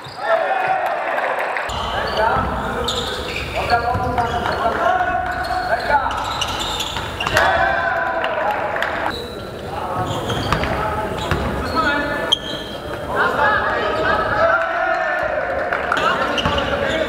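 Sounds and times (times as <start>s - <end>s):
players' voices echoing: 0.0s - 17.0s
basketball bouncing on court: 3.4s - 7.5s, 10.0s - 11.6s, 16.4s - 16.9s.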